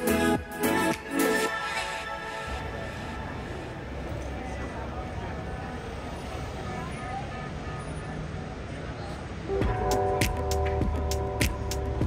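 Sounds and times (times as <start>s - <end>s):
traffic rumble: 0.0s - 12.0s
voices of passers-by: 0.0s - 12.0s.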